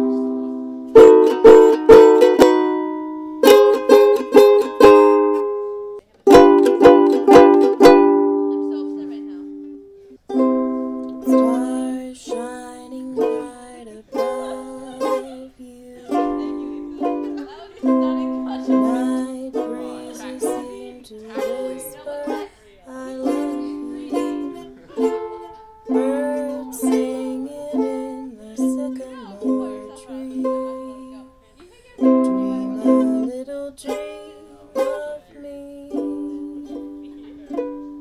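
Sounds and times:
person singing: 0.0 - 5.6, 11.0 - 38.0
ukulele strumming: 0.0 - 38.0.

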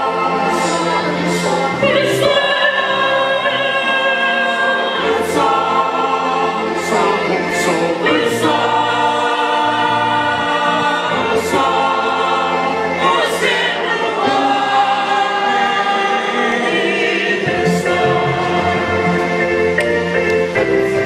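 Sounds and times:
women's choir singing: 0.0 - 20.6.

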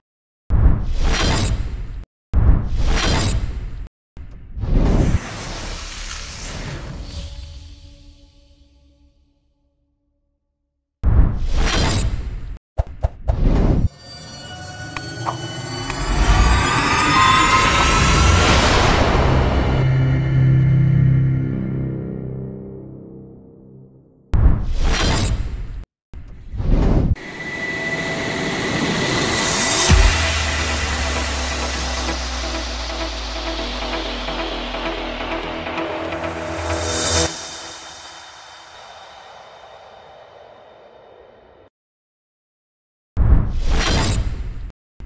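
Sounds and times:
rising noisy whoosh: 13.9 - 21.3, 27.2 - 41.7
crash sound effect with boom: 29.2 - 34.6
deep impact hit: 29.9 - 34.0.

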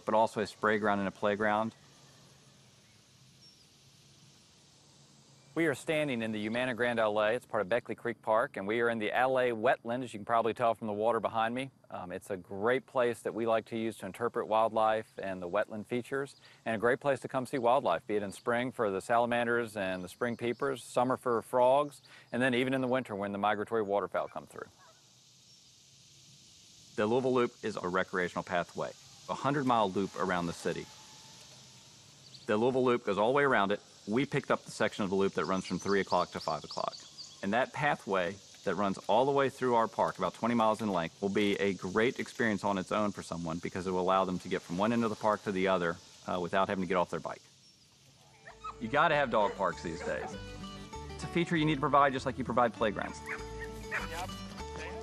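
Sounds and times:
faint outdoor background hiss: 0.0 - 55.0
dogs barking: 48.4 - 50.4, 53.2 - 54.3
background music with held notes: 48.8 - 55.0.

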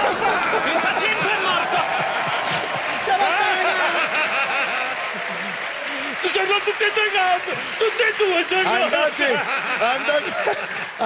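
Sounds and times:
studio audience applauding: 0.0 - 11.0.

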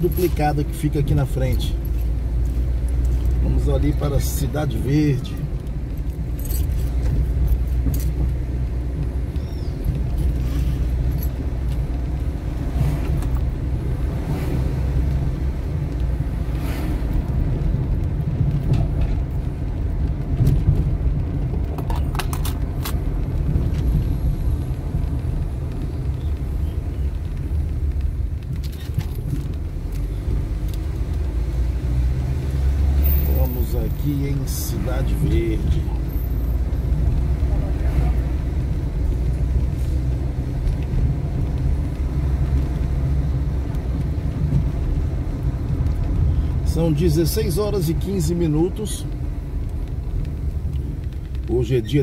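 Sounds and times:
light clicks and rattles: 0.0 - 13.5, 17.2 - 31.6
car engine and tyre rumble: 0.0 - 52.0.

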